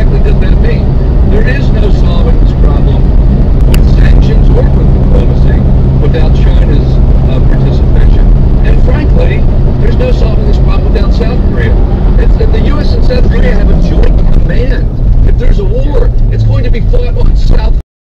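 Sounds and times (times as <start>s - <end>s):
muffled voices: 0.0s - 17.8s
vehicle engine and road noise: 0.0s - 17.8s.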